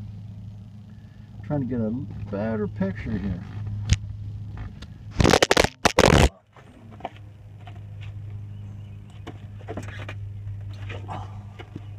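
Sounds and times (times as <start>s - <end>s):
car engine running: 0.0s - 11.9s
loud scraping handling noise: 4.6s - 6.3s.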